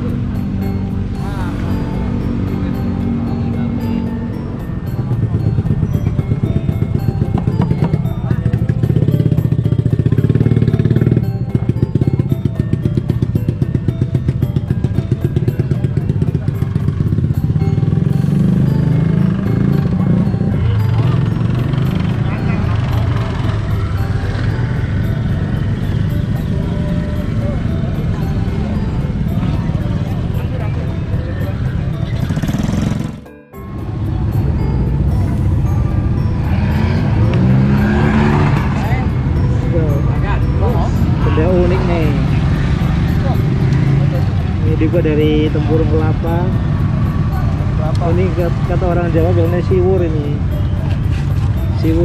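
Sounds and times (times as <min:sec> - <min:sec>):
people's voices: 0:00.0 - 0:33.2, 0:33.8 - 0:52.0
music: 0:00.0 - 0:52.0
vehicle engines running: 0:00.0 - 0:52.0.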